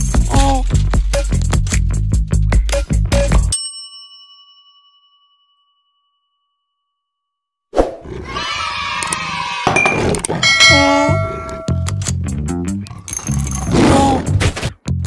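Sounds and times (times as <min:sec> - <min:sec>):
bell-like ding: 0:03.5 - 0:07.3, 0:09.8 - 0:12.1
chimes and gliding tones: 0:09.8 - 0:12.0.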